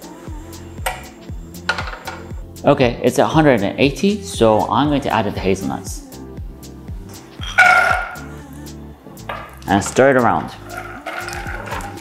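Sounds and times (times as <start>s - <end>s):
background music: 0.0s - 12.0s
nuts clattering into metal saucepan: 7.4s - 8.2s, 10.6s - 12.0s.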